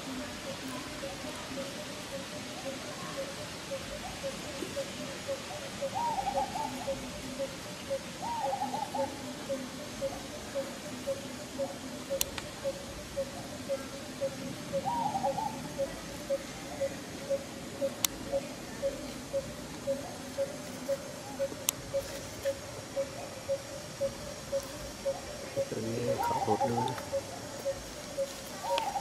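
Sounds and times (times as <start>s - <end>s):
low hooting calls: 0.0s - 29.0s
warbling calls: 0.0s - 29.0s.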